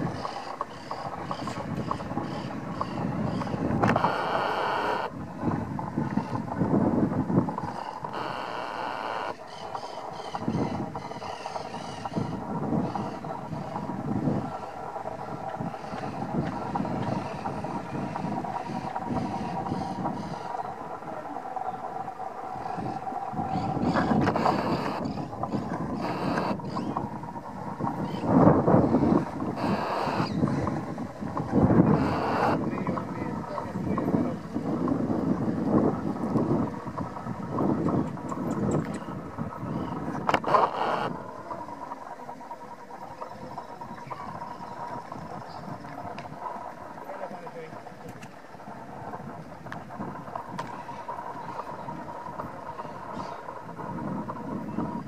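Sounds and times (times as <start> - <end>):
wind buffeting microphone: 0.0 - 55.0.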